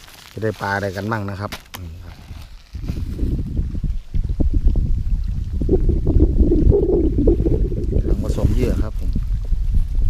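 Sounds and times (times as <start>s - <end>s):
wind rumbling on microphone: 2.0s - 10.0s.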